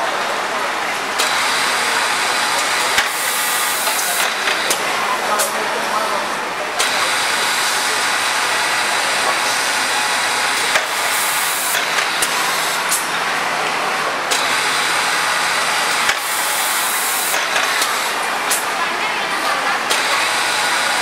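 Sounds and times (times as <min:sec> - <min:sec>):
hiss of air and machinery: 0:01.2 - 0:04.8, 0:06.8 - 0:13.2, 0:14.3 - 0:18.8.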